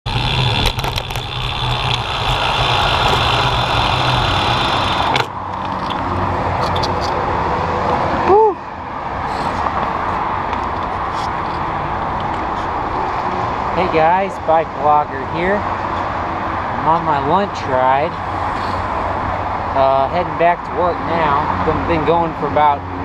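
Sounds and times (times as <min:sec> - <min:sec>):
bicycle tyre and wind noise: 0:00.0 - 0:14.9
highway traffic noise: 0:00.0 - 0:23.0.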